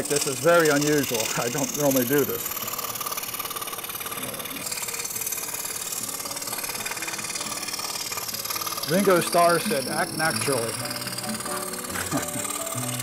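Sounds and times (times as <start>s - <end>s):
scroll saw cutting wood: 0.0s - 13.0s.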